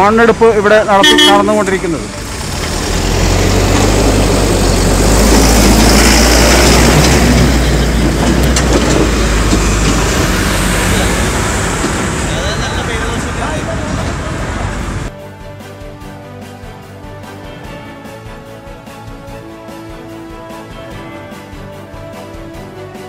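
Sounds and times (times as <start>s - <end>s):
truck engine drone: 0.0s - 15.1s
tyre and road noise: 0.0s - 15.1s
road traffic: 0.0s - 15.2s.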